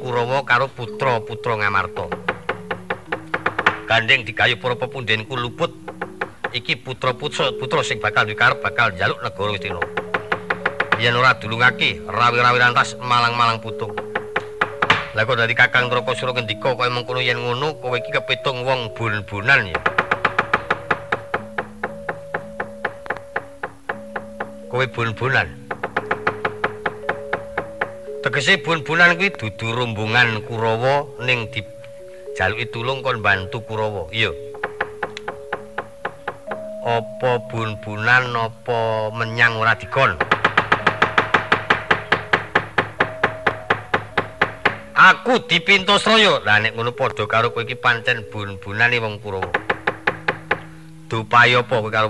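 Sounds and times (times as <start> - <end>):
sustained gamelan notes: 0.0 - 52.0
metal plates and wooden knocker clattering: 1.5 - 16.3, 19.6 - 28.4, 39.7 - 45.1.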